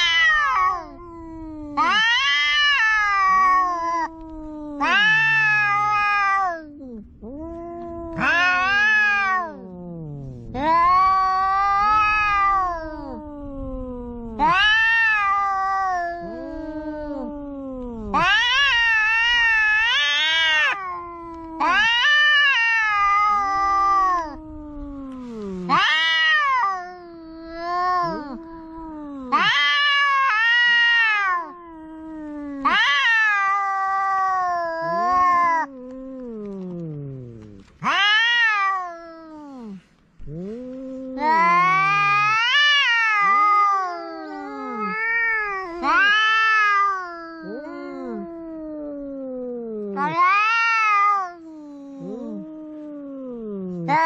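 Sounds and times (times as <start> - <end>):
cats yowling: 0.0 - 54.0.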